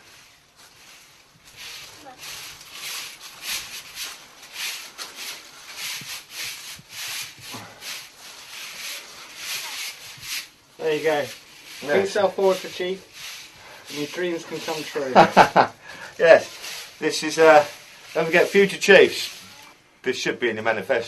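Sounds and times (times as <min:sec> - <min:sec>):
shovel scraping compost: 0:00.0 - 0:19.7.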